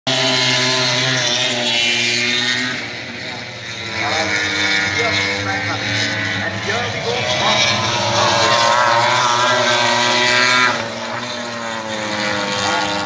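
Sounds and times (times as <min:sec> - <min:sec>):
motorcycle engines at high revs: 0:00.1 - 0:13.0
distant commentator voice: 0:03.9 - 0:10.1.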